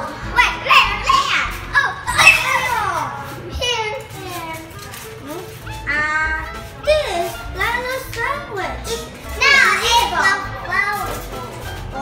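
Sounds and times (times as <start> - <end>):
background music: 0.0 - 12.0
children talking excitedly: 0.0 - 12.0.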